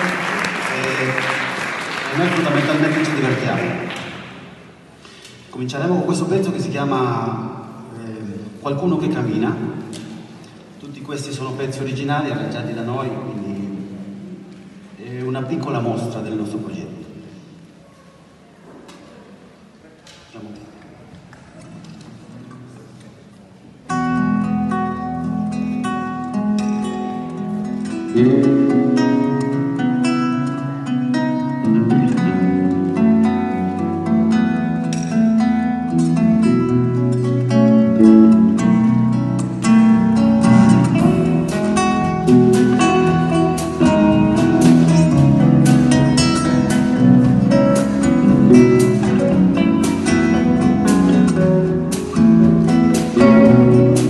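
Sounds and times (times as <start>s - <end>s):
plucked ringing guitar notes: 23.9s - 54.0s
steady low bass notes: 35.9s - 54.0s
drums: 38.5s - 54.0s.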